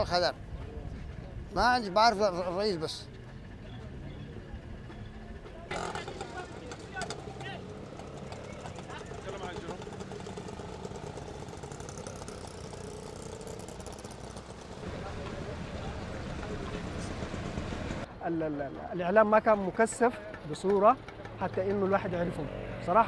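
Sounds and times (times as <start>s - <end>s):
engine and traffic rumble: 0.0s - 23.0s.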